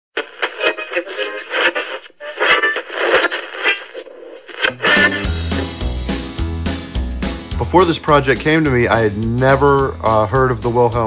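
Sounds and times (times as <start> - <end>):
tinny old film music: 4.7 - 11.0.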